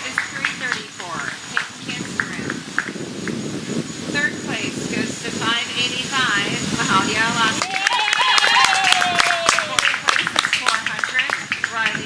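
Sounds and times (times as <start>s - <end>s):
people talking: 0.0s - 2.8s, 4.0s - 12.0s.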